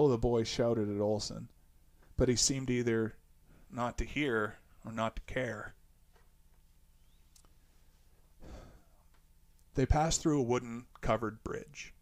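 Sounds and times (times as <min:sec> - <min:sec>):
faint low hum: 0:00.0 - 0:12.0
soft breath: 0:07.1 - 0:09.1.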